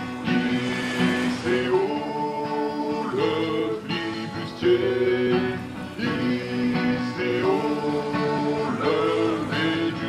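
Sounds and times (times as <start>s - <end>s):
men singing: 0.0s - 10.0s
strummed acoustic guitar: 0.0s - 10.0s.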